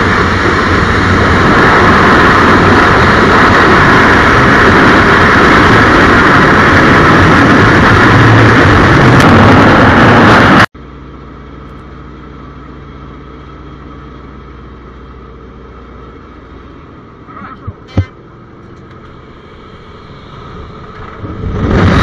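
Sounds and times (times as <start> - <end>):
loud rush of wind: 0.0 - 10.7, 18.9 - 22.0
radial engine droning: 0.0 - 22.0
sharp knock: 17.6 - 18.2.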